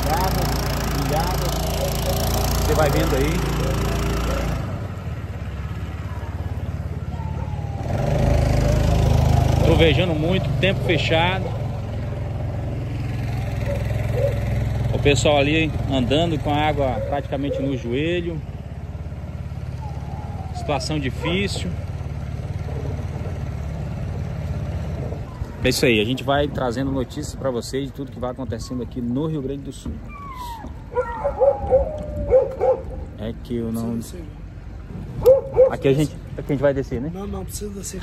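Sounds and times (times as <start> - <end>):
engine running steadily: 0.0 - 38.0
dog yelping: 6.8 - 9.2, 10.6 - 11.8, 13.5 - 14.6, 16.4 - 18.1, 19.7 - 21.8, 22.4 - 23.4, 25.0 - 25.7, 30.0 - 33.2, 35.2 - 36.0
dog whining: 13.6 - 14.4, 16.8 - 17.9, 19.8 - 21.7, 30.0 - 33.1, 35.2 - 35.8.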